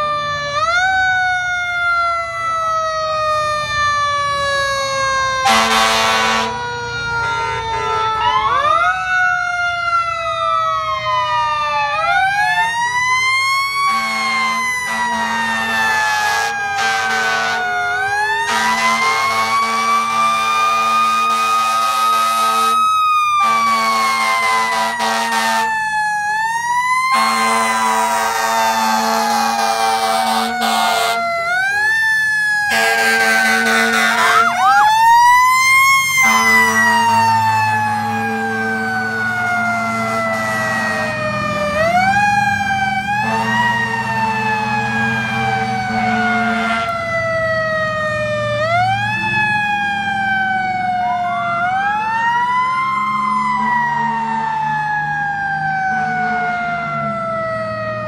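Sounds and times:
fire engine sirens wailing: 0:00.0 - 0:58.0.

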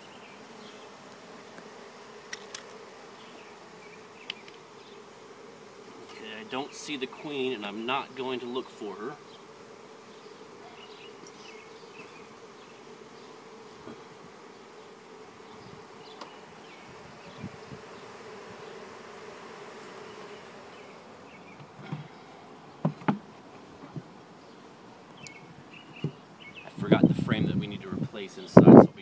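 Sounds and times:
honeybees buzzing: 0:00.0 - 0:29.0.

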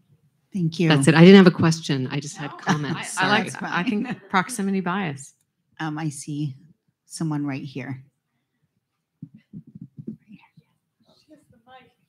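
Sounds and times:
murmur of speech: 0:00.8 - 0:05.3.

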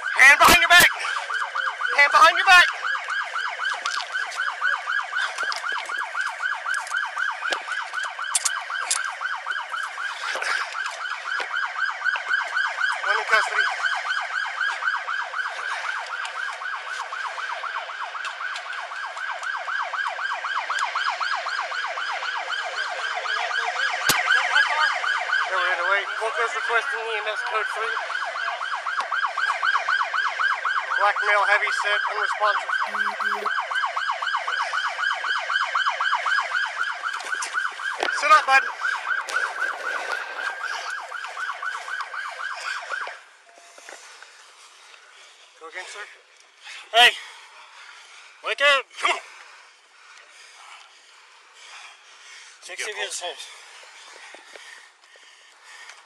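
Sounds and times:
police siren yelping: 0:00.0 - 0:52.0.

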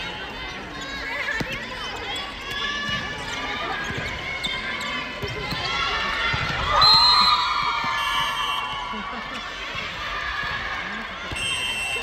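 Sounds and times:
players calling and shouting: 0:00.0 - 0:12.0.

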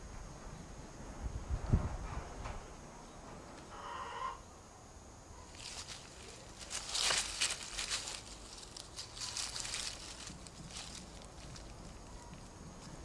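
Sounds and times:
dry leaves crunching: 0:05.5 - 0:13.0.

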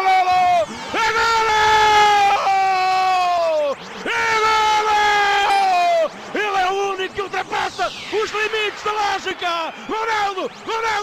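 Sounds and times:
commentator shouting excitedly: 0:00.0 - 0:11.0.

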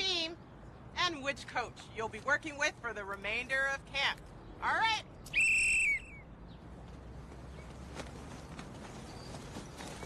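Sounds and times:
whistle blast: 0:05.3 - 0:06.3.

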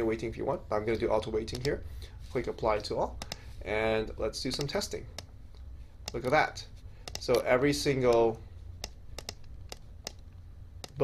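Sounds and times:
low steady hum: 0:00.0 - 0:11.0
computer mouse clicks: 0:01.5 - 0:01.8, 0:03.2 - 0:03.4, 0:04.5 - 0:05.3, 0:06.0 - 0:06.4, 0:07.0 - 0:11.0.

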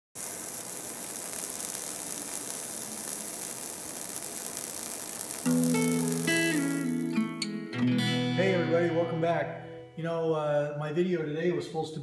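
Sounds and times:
arc welding hiss: 0:00.0 - 0:07.2
plucked acoustic guitar tune: 0:05.4 - 0:10.0.

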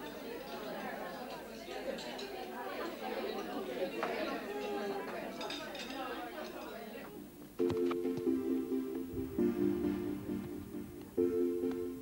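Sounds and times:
young people chattering: 0:00.0 - 0:07.4
cutlery clinking: 0:01.9 - 0:02.5, 0:03.3 - 0:06.8.

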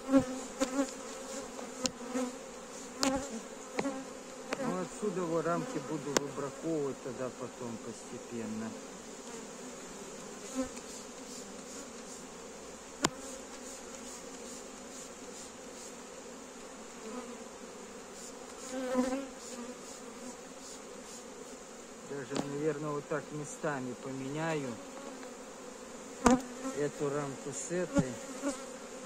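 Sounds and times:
honey bees buzzing: 0:00.0 - 0:29.0.

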